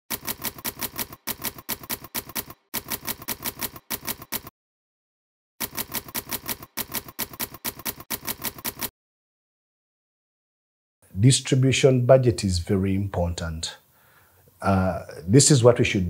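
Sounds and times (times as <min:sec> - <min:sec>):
manual typewriter keys striking: 0:00.1 - 0:04.5, 0:05.6 - 0:08.9.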